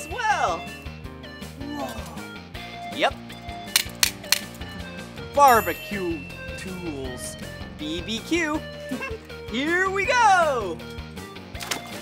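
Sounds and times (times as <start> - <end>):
background music: 0.0 - 12.0
metal tongs clacking: 3.3 - 4.6.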